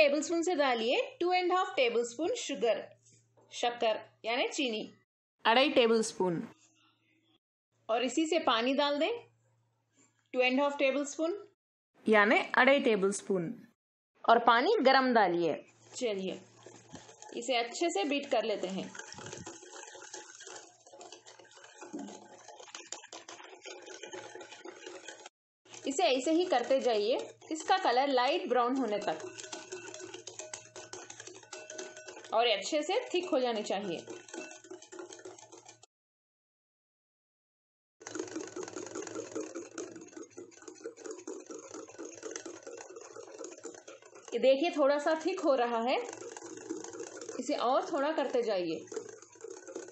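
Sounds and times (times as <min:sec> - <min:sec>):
whisk clicking against glass: 0:15.8 - 0:35.9, 0:38.0 - 0:49.9.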